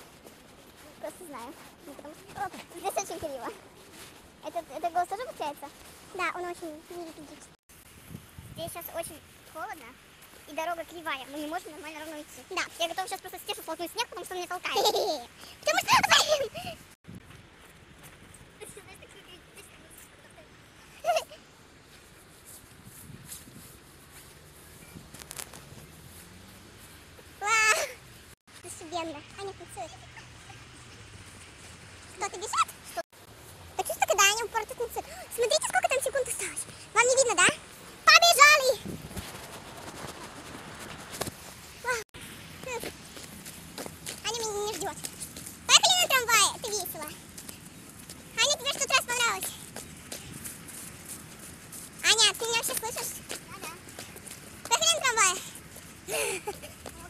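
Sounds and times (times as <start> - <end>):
footsteps in snow: 0.0 - 15.0, 21.0 - 57.0
girl talking: 0.8 - 3.6, 4.4 - 7.6, 8.6 - 16.9, 18.6 - 21.4, 27.4 - 28.0, 28.6 - 30.7, 32.1 - 33.0, 33.8 - 38.9, 41.8 - 42.9, 44.2 - 45.0, 45.7 - 47.2, 48.4 - 49.6, 52.0 - 54.0, 54.6 - 57.0
girl calling: 14.7 - 16.9, 27.4 - 28.0, 33.8 - 38.8, 54.6 - 57.0.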